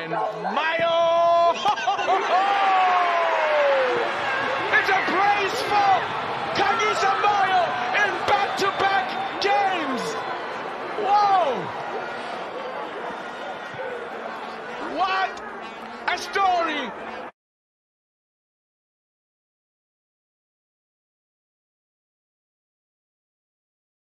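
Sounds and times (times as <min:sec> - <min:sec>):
men shouting in excitement: 0:01.5 - 0:10.2.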